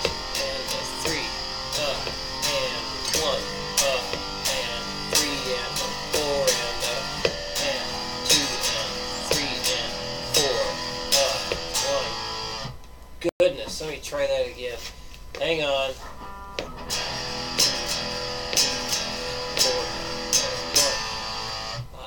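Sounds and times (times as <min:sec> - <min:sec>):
electric guitar strumming chords: 0:00.0 - 0:12.8, 0:15.9 - 0:22.0.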